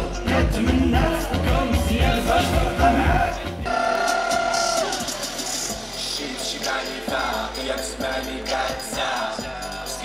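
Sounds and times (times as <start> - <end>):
live band with heavy beat: 0.0 - 10.0.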